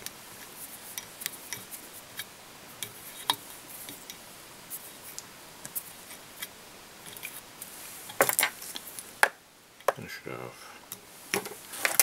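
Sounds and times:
tools clicking and tapping: 0.9 - 4.2.

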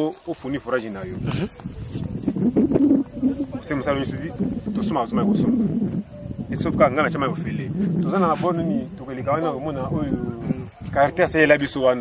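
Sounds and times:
high-pitched insect buzz: 1.0 - 11.0
man speaking: 6.5 - 12.0.

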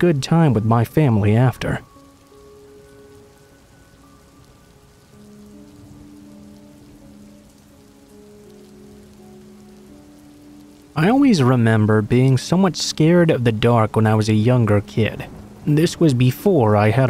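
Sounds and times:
soft music with long held notes: 0.0 - 17.0
steady rainfall: 0.0 - 17.0.

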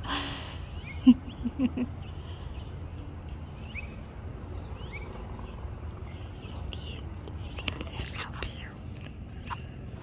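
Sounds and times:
person whispering: 6.4 - 7.1, 7.7 - 8.9.

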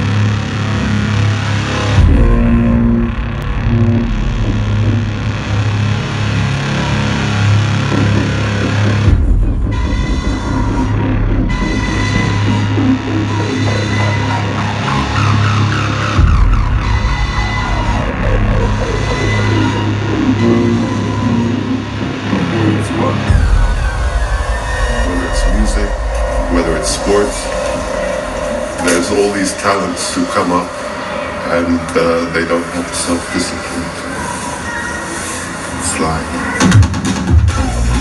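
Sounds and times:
distorted synth wash: 0.0 - 38.0
heavy bass drone: 0.0 - 38.0.

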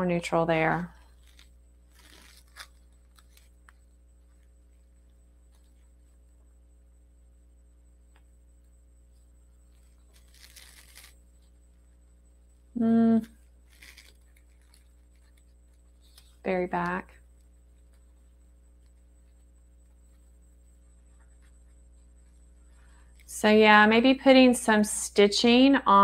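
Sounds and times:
paper pieces rustling: 1.1 - 3.6, 9.8 - 11.2, 13.7 - 15.4
person humming: 12.8 - 13.3.

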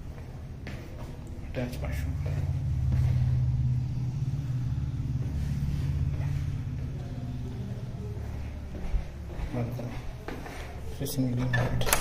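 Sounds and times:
low rumble: 1.3 - 9.4.

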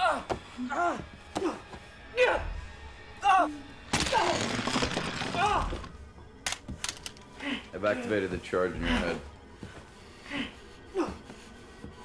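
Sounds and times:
film score music: 0.0 - 12.0.

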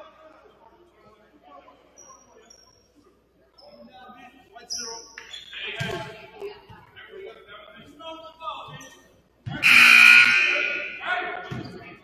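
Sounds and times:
scoreboard horn: 9.6 - 11.0.

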